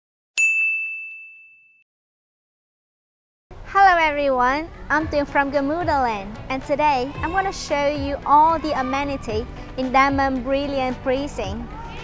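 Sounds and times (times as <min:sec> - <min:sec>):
bright ding: 0:00.4 - 0:01.8.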